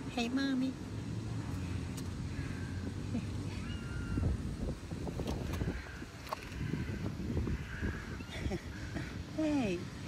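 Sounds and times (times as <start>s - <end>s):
distant city traffic rumble: 0.0s - 10.0s.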